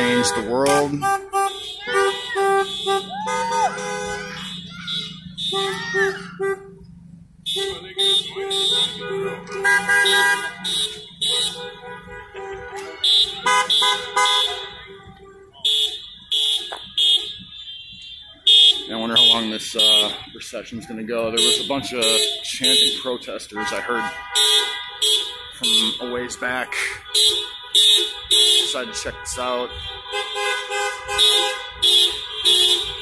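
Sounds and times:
car horns honking: 0.0s - 33.0s.

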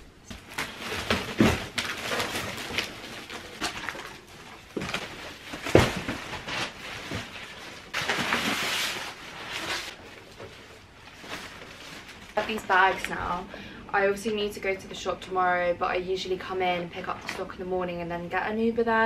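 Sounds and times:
plastic bags crinkling and rustling: 0.2s - 13.5s
cardboard boxes knocking and flattened: 0.3s - 9.8s.

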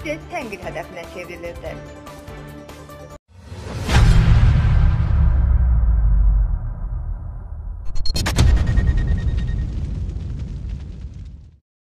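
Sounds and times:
low rumbling boom: 3.5s - 11.6s
faint crackle: 8.6s - 11.6s.

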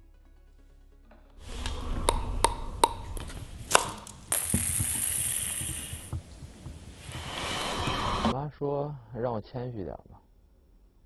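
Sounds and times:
steady hiss: 3.8s - 8.3s.

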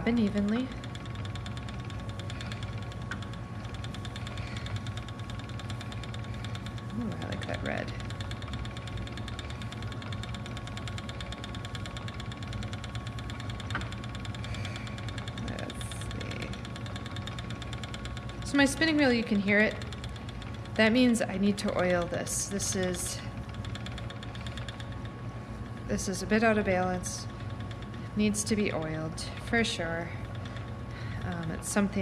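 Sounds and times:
spinning wheel whirring: 0.0s - 32.0s.

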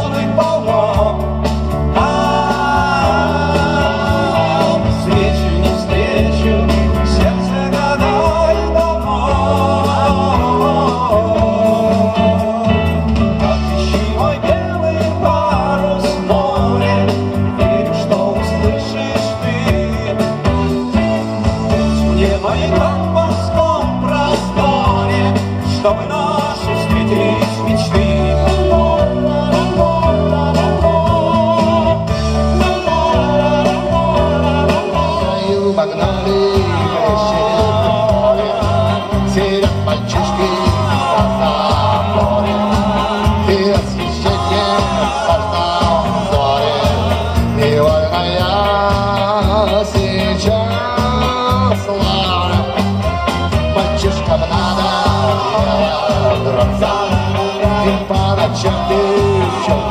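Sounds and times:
bass guitar: 0.0s - 59.9s
drums: 0.0s - 59.9s
electric guitars: 0.0s - 59.9s
keyboards: 0.0s - 59.9s
man singing: 0.0s - 59.9s.

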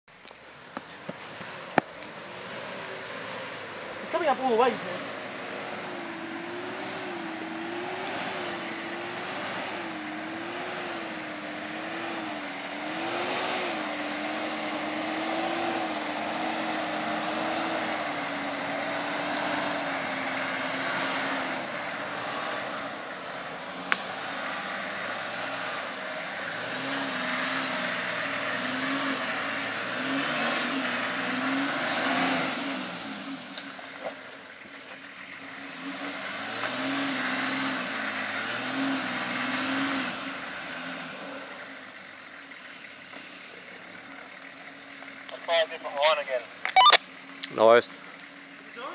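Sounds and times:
vehicle engine revving hard: 2.4s - 33.5s, 35.4s - 42.0s.

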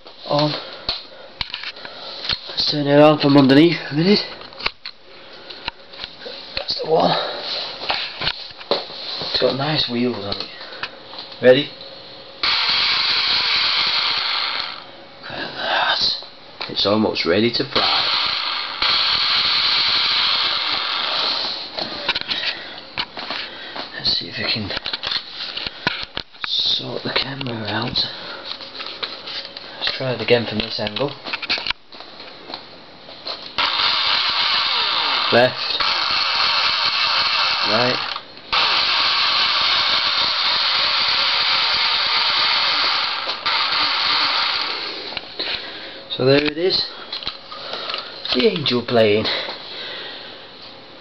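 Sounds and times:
electric motors and propellers whirring: 12.4s - 14.9s, 17.8s - 21.9s, 33.6s - 45.2s.

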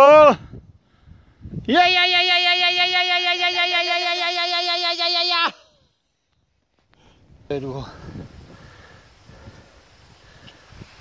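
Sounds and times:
person yelling high: 1.7s - 5.7s.

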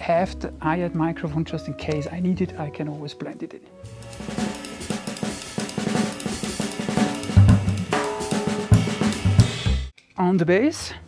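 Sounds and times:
jazz trio music: 0.0s - 9.9s
cymbals washing: 3.8s - 9.9s
quick drum strokes: 3.9s - 9.9s.

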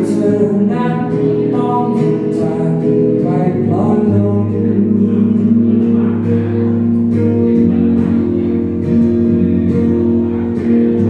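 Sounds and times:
guitar chords ringing: 0.0s - 11.0s.

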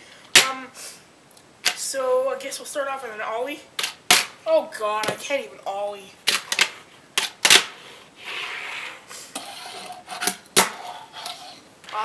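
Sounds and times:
soft hiss: 0.0s - 12.0s.

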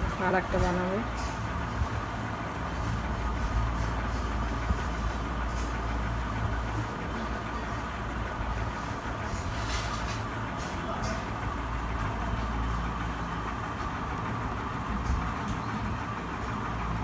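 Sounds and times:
low background rumble: 0.0s - 17.0s.

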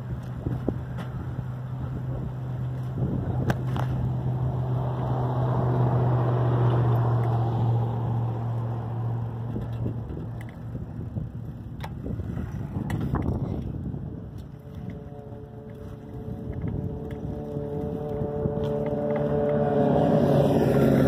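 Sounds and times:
road and wind noise: 0.0s - 21.0s
vehicle motor hum: 0.0s - 21.0s.

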